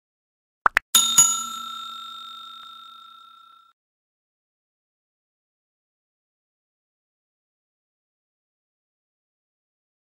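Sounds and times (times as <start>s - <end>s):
notification bell dinging: 1.0s - 3.7s.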